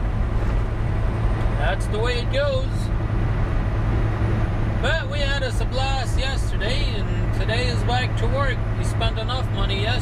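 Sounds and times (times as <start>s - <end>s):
diesel truck engine drone: 0.0s - 10.0s
road noise: 0.0s - 10.0s.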